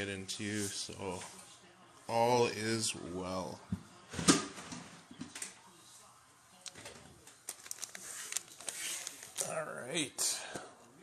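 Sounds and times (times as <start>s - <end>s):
foil packs crinkling: 7.3s - 9.6s.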